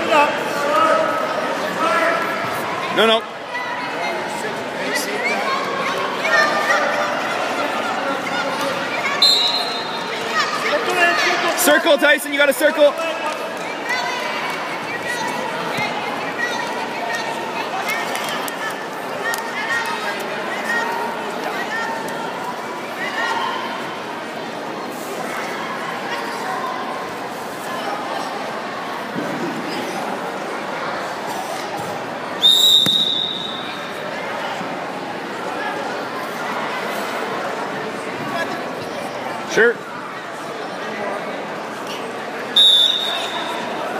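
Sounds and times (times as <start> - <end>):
crowd chatter: 0.0 - 43.9
murmur of many voices: 0.0 - 43.9
referee's whistle blast: 9.2 - 10.0, 32.4 - 33.8, 42.6 - 43.6.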